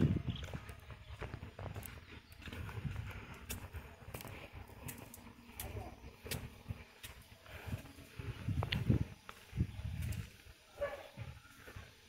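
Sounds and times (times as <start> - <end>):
footsteps on bridge deck: 0.0 - 12.0.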